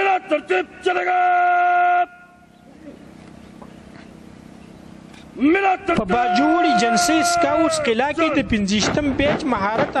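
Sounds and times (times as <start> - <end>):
person shouting a command: 0.0 - 2.2, 5.4 - 8.7.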